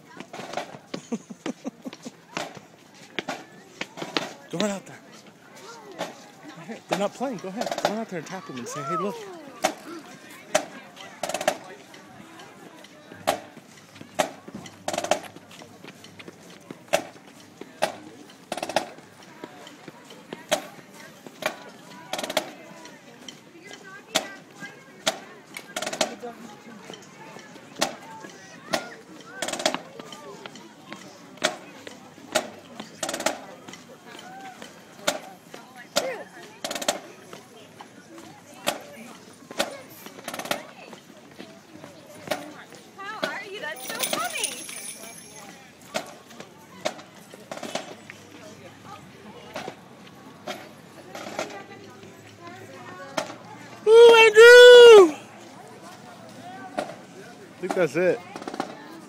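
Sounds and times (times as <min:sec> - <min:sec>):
marching drumline street beat: 0:00.1 - 0:05.0, 0:06.0 - 0:11.9, 0:13.2 - 0:16.2, 0:16.8 - 0:22.6, 0:27.7 - 0:30.6, 0:32.3 - 0:35.3.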